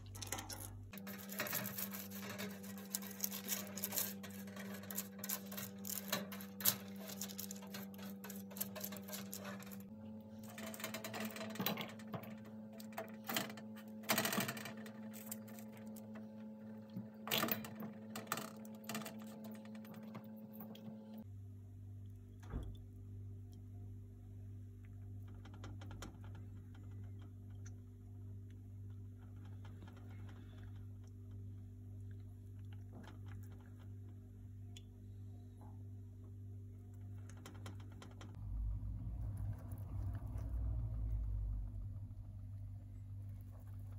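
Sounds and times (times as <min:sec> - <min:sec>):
steady low hum: 0:00.0 - 0:43.9
brush scraping in ceramic bowl: 0:01.0 - 0:11.4.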